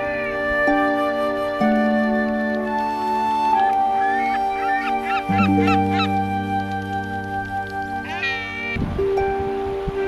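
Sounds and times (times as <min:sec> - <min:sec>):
gulls calling: 0:00.0 - 0:08.8
background music: 0:00.0 - 0:10.0.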